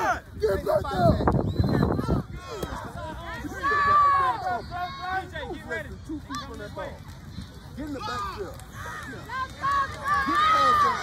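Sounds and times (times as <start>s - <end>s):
people shouting: 2.0s - 6.6s, 7.9s - 11.0s.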